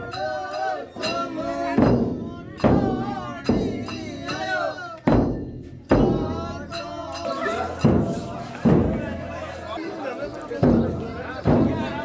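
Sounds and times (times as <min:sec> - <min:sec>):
men singing: 0:00.0 - 0:12.0
frame drums struck by hand: 0:01.0 - 0:09.4, 0:10.6 - 0:12.0.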